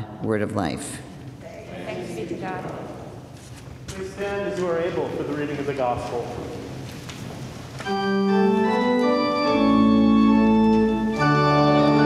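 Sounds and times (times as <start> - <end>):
congregation speaking in unison: 0.0 - 6.8.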